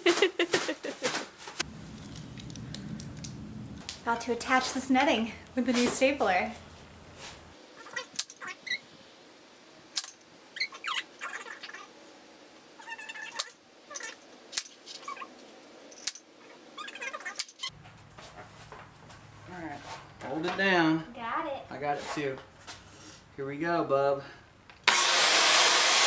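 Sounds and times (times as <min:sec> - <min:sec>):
high squeaky sounds: 0:07.8 - 0:08.9, 0:10.6 - 0:11.9, 0:12.8 - 0:14.2, 0:14.8 - 0:15.4, 0:16.4 - 0:17.7.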